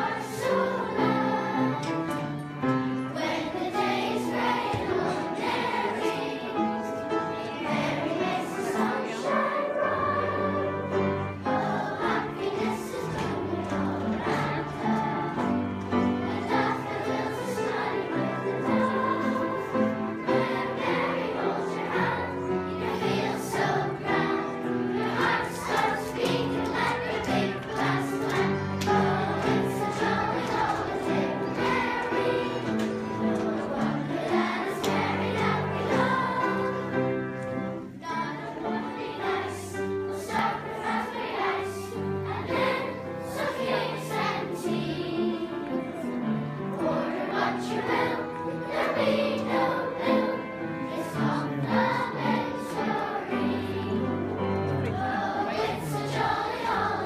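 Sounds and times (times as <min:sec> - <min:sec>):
children singing in chorus: 0:00.0 - 0:57.0
instrumental accompaniment: 0:00.0 - 0:57.0.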